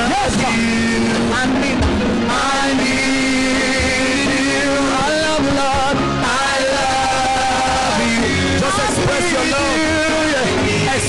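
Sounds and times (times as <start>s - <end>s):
sustained backing music: 0.0s - 11.0s
voices singing worship music: 0.0s - 11.0s
low drum thump: 0.3s - 5.9s.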